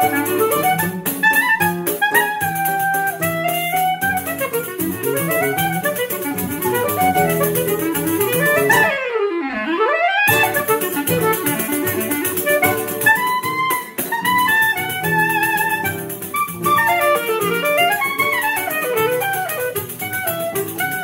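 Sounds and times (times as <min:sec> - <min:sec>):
acoustic guitar: 0:00.0 - 0:09.0, 0:10.3 - 0:21.0
clarinet melody: 0:00.0 - 0:21.0.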